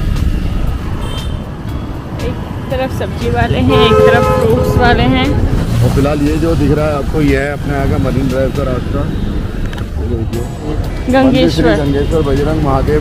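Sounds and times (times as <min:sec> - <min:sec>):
road and traffic rumble: 0:00.0 - 0:13.0.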